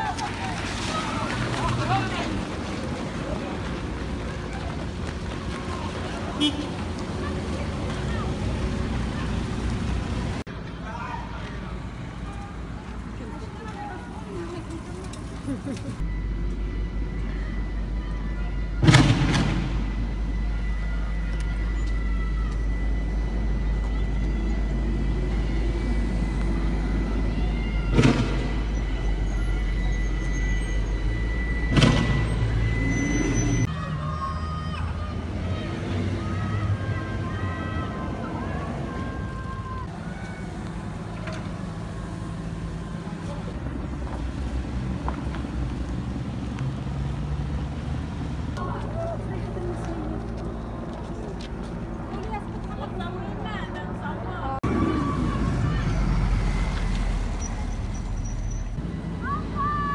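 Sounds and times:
vehicles driving past: 0.0s - 59.9s
sharp bangs: 18.8s - 20.2s, 31.7s - 32.8s.

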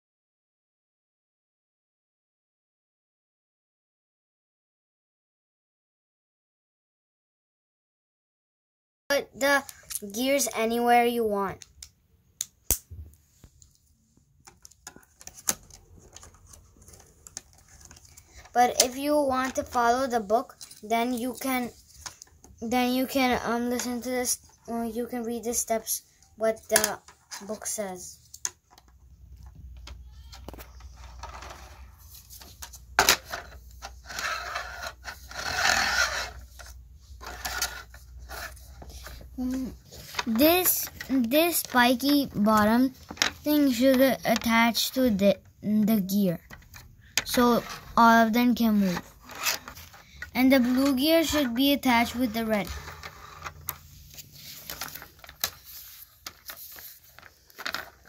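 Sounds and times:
paper disc scraping on plastic: 33.2s - 41.9s, 47.4s - 57.9s.

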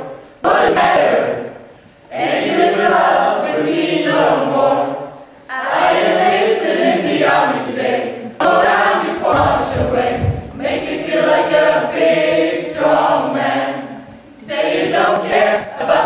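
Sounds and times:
chorus singing in unison: 0.0s - 16.0s
low thumps: 8.4s - 11.2s.

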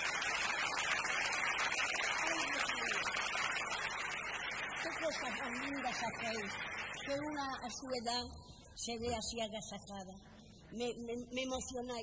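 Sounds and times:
crowd applauding: 0.0s - 7.4s.

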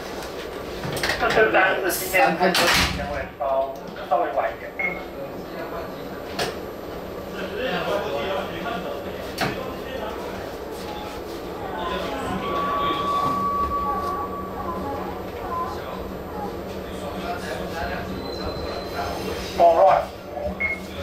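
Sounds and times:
indistinct voices: 7.0s - 21.0s
steady high beep: 12.1s - 16.3s.

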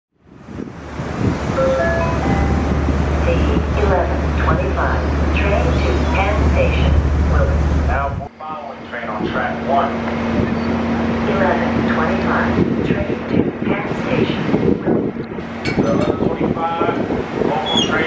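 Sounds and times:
low rumble: 0.4s - 8.3s
public-address announcement: 1.6s - 10.0s, 11.2s - 14.4s.

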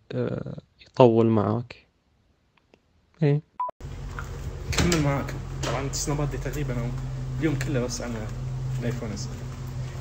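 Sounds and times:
steady low hum: 3.8s - 10.0s.

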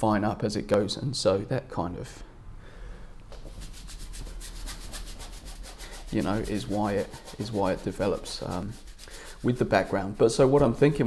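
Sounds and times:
paintbrush scrubbing on canvas: 3.3s - 11.0s.

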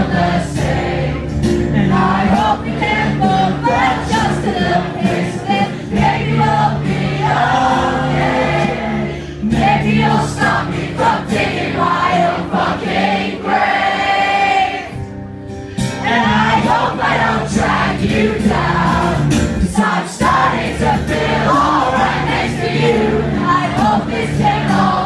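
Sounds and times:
singer and crowd singing along: 0.0s - 15.2s, 15.8s - 25.0s
strummed acoustic guitar: 0.0s - 25.0s.

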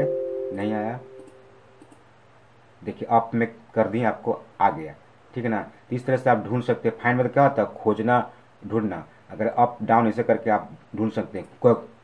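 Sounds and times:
computer mouse clicks: 1.2s - 2.1s.

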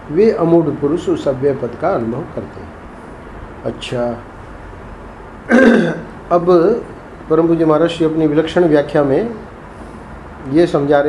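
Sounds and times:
man clearing throat: 5.5s - 6.1s.

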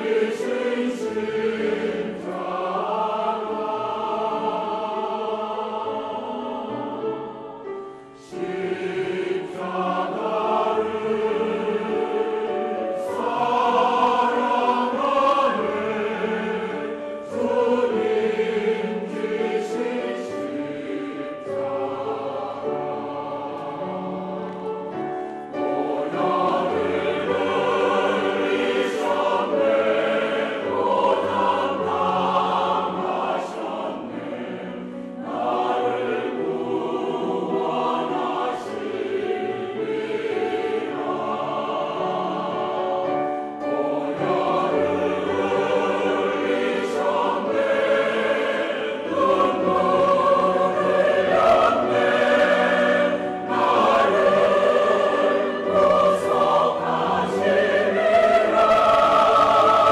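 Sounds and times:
church choir singing in harmony: 0.0s - 59.9s.

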